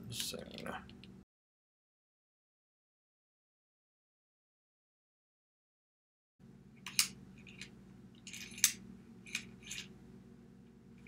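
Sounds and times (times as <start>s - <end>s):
low steady hum: 0.0s - 1.2s, 6.4s - 11.0s.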